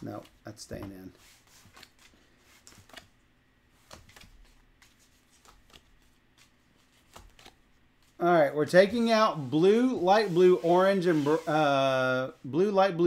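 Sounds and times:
cardboard cards rustling and clicking: 0:00.0 - 0:08.2.

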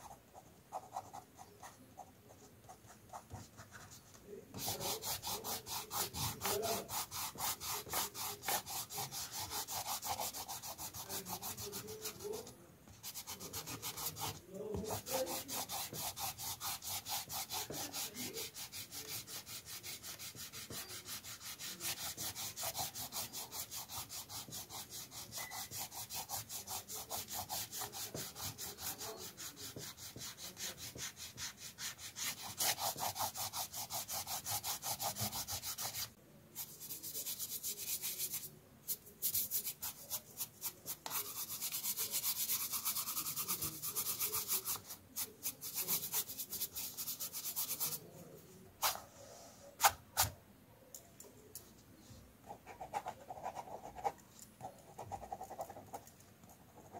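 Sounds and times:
eraser rubbing on paper: 0:02.7 - 0:48.1.

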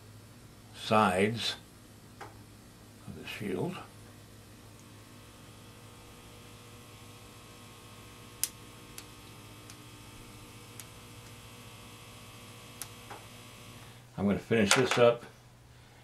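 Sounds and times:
low electrical mains hum: 0:00.0 - 0:16.0.

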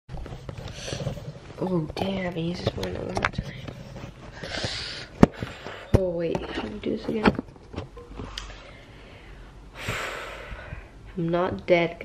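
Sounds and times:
low room noise: 0:00.1 - 0:12.0
person gasping: 0:04.4 - 0:06.0.

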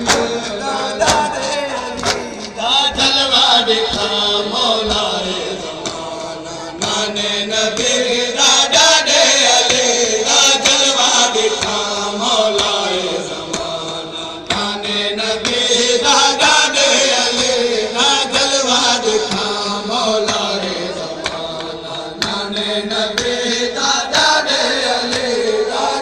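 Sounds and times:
chest-beating slaps: 0:00.0 - 0:01.4, 0:02.0 - 0:02.6
men chanting call and response: 0:00.0 - 0:26.0.

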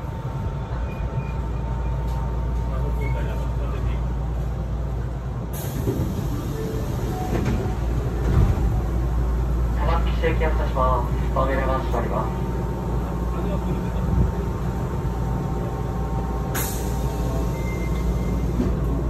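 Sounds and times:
stationary train hum and rumble: 0:00.0 - 0:19.0.

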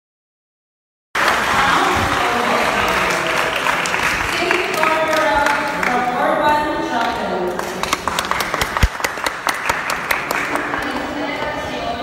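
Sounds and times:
audience clapping: 0:01.2 - 0:11.6.

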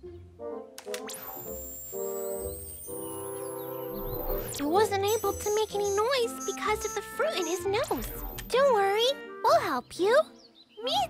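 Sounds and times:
cartoon background music: 0:00.0 - 0:11.0
clicks: 0:00.8 - 0:03.0
rising electronic whine: 0:01.0 - 0:05.5.

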